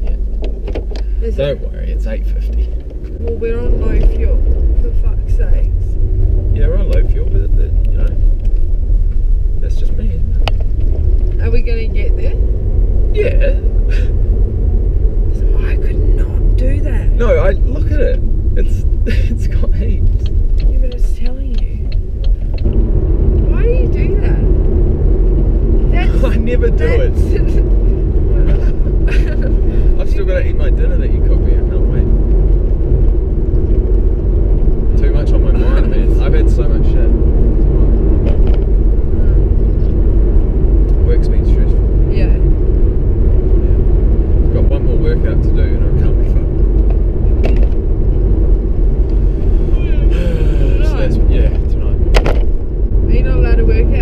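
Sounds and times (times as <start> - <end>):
indistinct voices: 0.0 - 8.4, 15.1 - 52.2, 52.8 - 54.0
car engine and road rumble: 0.0 - 54.0.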